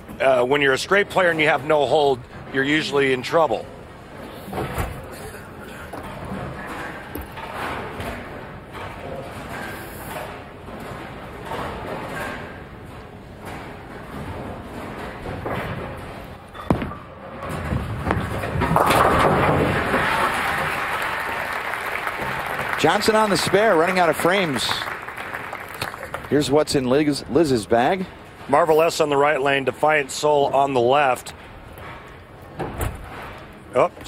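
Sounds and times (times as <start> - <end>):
bowling ball thudding on lane: 16.6 - 20.6
crowd cheering and applauding: 19.7 - 26.3.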